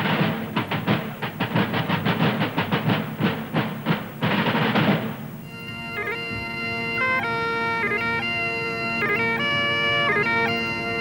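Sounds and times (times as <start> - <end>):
rapid drum strokes: 0.0 - 5.4.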